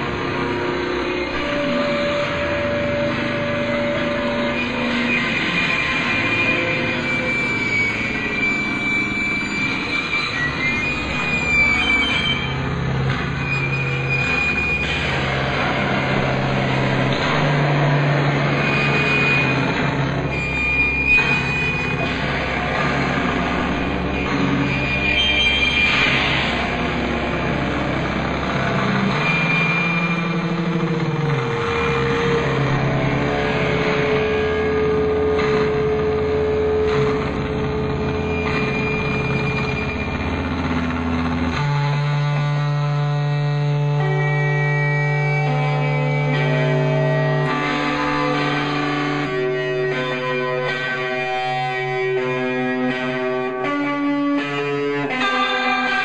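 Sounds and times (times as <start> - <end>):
sustained low tone: 0.0 - 53.6
noisy experimental rock drone: 0.0 - 56.0.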